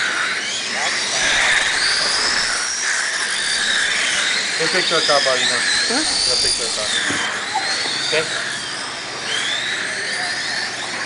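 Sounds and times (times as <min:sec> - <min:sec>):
toy car motor whining: 0:00.0 - 0:11.0.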